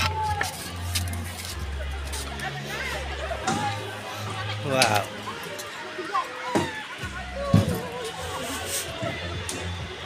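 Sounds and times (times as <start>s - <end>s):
background music: 0.0s - 10.0s
footsteps on a footbridge deck: 0.0s - 10.0s
people chattering: 0.0s - 10.0s.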